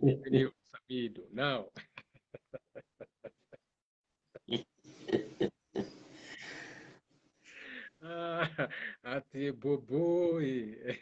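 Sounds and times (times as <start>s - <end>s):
breathy gasps: 6.2s - 8.0s.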